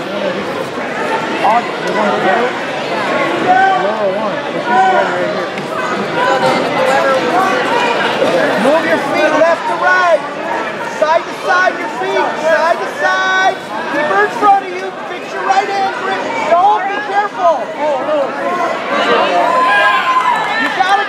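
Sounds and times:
crowd talking and calling out: 0.0s - 21.0s.

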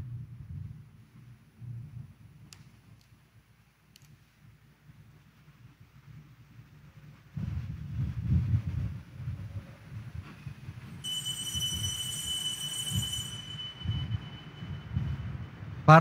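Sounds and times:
low rumbling with soft bumps: 7.0s - 10.8s
high-pitched ringing tone: 11.0s - 15.8s.

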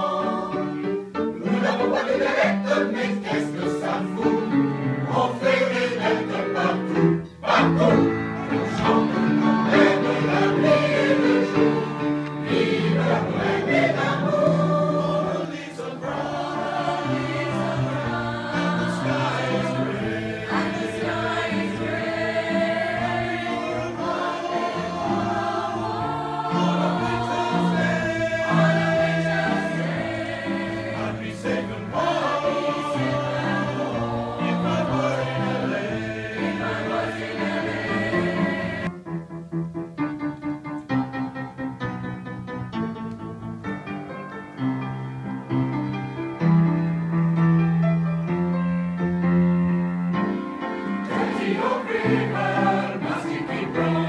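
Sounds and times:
mixed choir singing: 0.0s - 38.9s, 50.8s - 54.0s
piano accompaniment: 0.0s - 54.0s.

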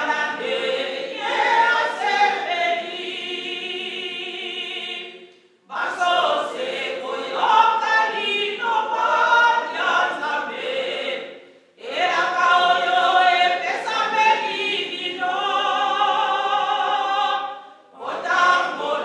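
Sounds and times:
woman singing a hymn: 11.8s - 17.5s.

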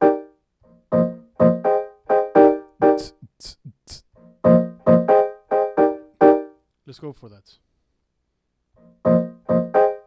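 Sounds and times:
lo-fi piano chords: 0.0s - 3.3s, 4.2s - 6.6s, 8.8s - 10.0s.

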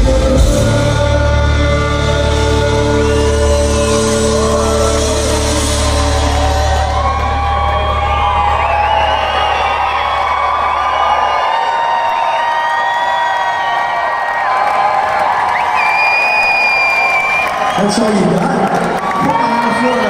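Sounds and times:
crowd cheering and whooping: 0.9s - 20.0s.

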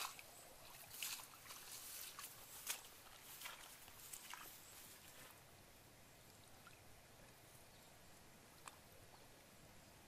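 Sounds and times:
feet splashing through shallow water: 0.0s - 5.4s.

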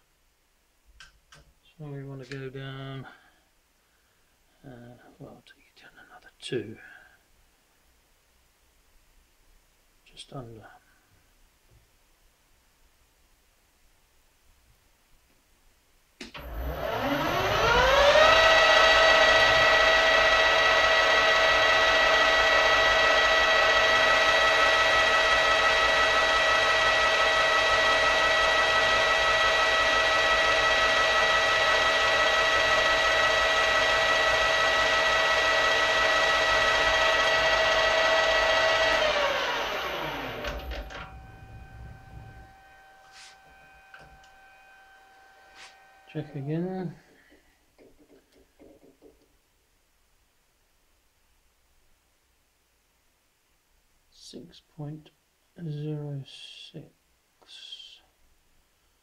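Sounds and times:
faint hum: 0.0s - 48.4s
lathe motor whine: 16.4s - 46.7s.

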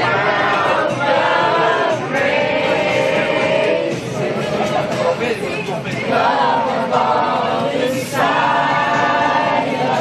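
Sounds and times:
crowd singing unaccompanied: 0.0s - 10.0s.

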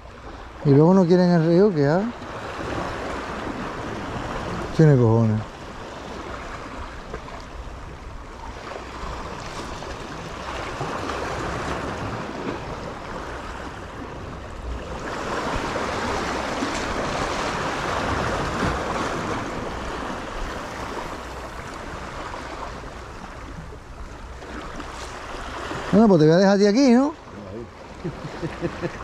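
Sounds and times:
sea waves washing against jetty: 0.0s - 29.0s.

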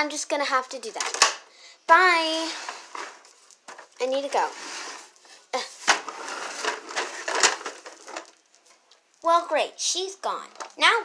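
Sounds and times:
plastic toys clacking: 0.7s - 1.4s, 5.8s - 8.4s, 10.5s - 10.9s
plastic toys scraping on tile: 2.3s - 8.4s.

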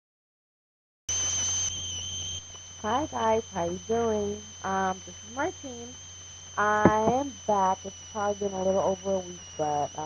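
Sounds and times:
high-pitched electronic ringing: 1.1s - 10.0s
low hum: 1.1s - 10.0s
woman saying hi: 2.9s - 5.9s, 6.6s - 7.7s.

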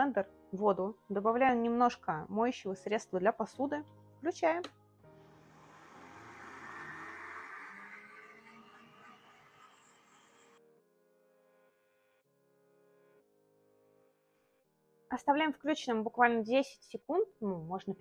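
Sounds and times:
soft background music: 0.0s - 18.0s
blender running: 5.3s - 10.6s.

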